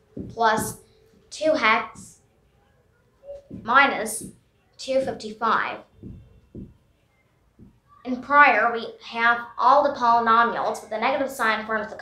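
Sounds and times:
marker pen on whiteboard: 0.0s - 2.2s, 3.2s - 8.5s.

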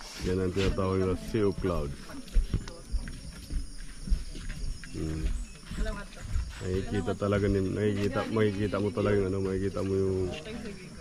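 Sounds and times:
irregular low thumps and rumble: 1.2s - 7.8s.

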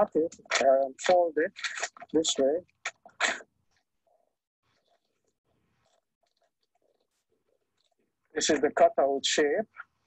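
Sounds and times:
faint crackles: 0.0s - 10.0s.

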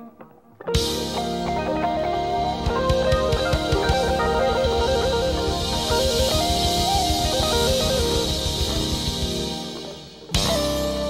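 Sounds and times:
electric guitar with effects: 0.0s - 11.0s
jazz-fusion band playing: 0.7s - 11.0s
kick-drum hits: 2.5s - 11.0s.

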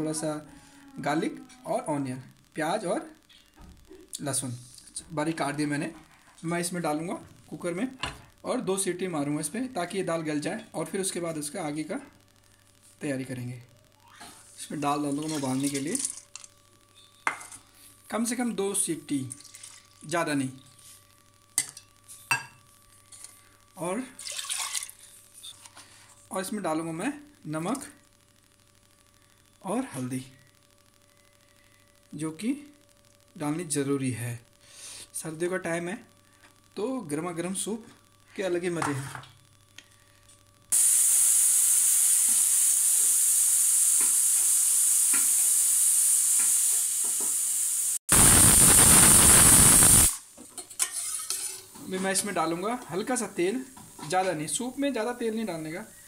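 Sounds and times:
pressure cooker hissing: 14.1s - 16.3s, 40.7s - 50.2s
water splashing into pot: 15.1s - 16.2s, 19.3s - 20.1s, 24.2s - 25.0s.

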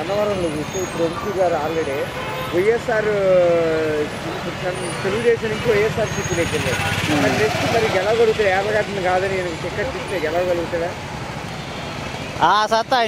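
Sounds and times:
man talking: 0.0s - 11.0s, 12.4s - 13.0s
road traffic noise: 0.0s - 13.0s
vehicle engine rumbling: 0.0s - 13.0s.

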